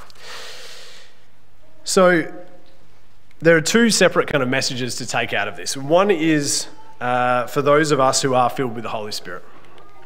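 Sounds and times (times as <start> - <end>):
man breathing in: 0.0 - 1.3
man speaking: 1.8 - 2.6, 3.4 - 9.5.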